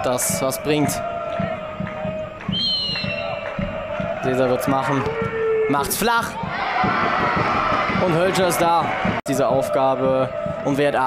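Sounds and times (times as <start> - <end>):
referee's whistle blowing: 2.5 - 3.5.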